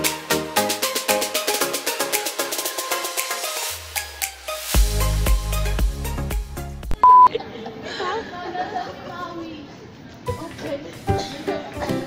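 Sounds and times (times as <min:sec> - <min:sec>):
background music with a beat: 0:00.0 - 0:07.1
loud electronic beep: 0:07.0 - 0:07.3.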